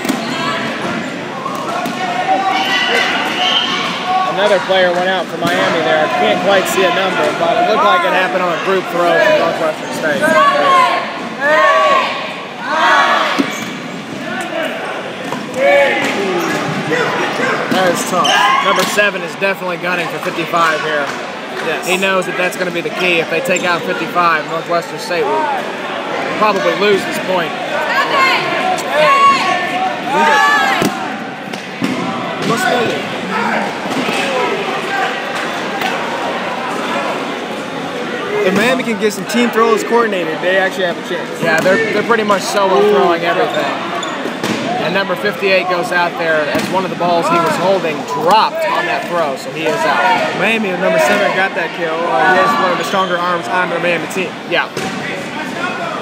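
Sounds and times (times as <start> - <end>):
players shouting in a gymnasium: 0.0 - 56.0
dodgeball thuds: 30.7 - 33.0, 54.7 - 55.2.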